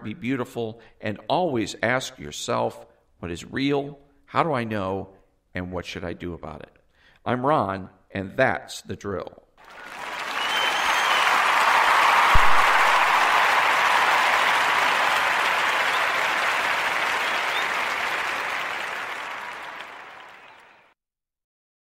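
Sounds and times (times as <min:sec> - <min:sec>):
crowd applause: 0:09.6 - 0:20.9.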